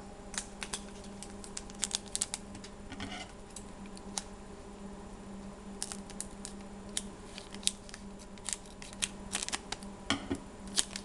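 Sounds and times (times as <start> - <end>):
steady low hum: 0.0 - 11.0
wrapper snipping and crinkling: 0.3 - 2.7, 5.8 - 9.9, 10.7 - 11.0
crisp clicks: 5.8 - 9.9, 10.7 - 11.0.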